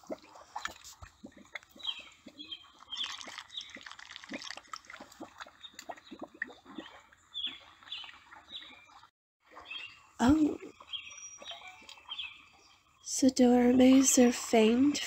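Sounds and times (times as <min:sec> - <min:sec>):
wet mud squelching: 0:00.0 - 0:08.8
birds chirping: 0:00.6 - 0:04.5, 0:05.3 - 0:15.0.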